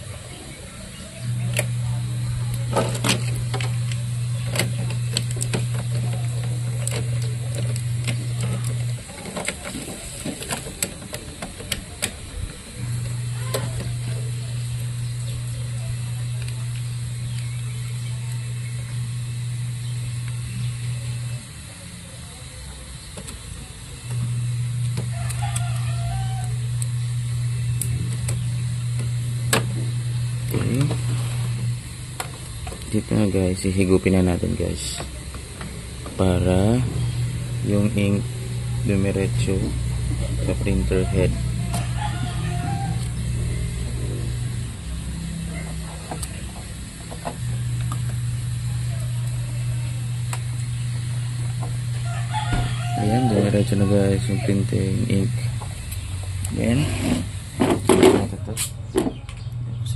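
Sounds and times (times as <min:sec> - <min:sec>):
loud low machine hum: 0:00.0 - 0:59.9.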